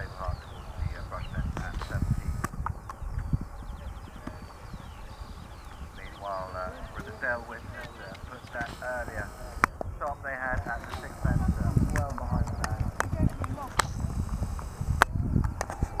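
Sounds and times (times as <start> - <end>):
sharp clicks: 1.4 - 3.3, 6.9 - 16.0
horse hoofbeats on grass: 9.6 - 16.0.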